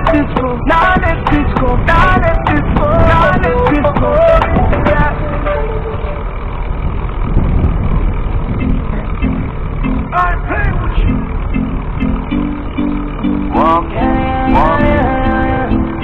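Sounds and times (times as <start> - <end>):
music from car stereo: 0.0 - 6.2, 8.6 - 16.0
car tyres and engine rumble: 0.0 - 16.0
repeated guitar notes: 8.5 - 16.0.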